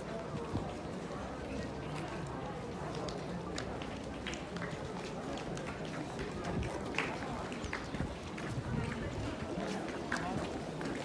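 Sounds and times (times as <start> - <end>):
murmur of crowd voices: 0.0 - 11.0
footsteps on pavement: 0.1 - 11.0.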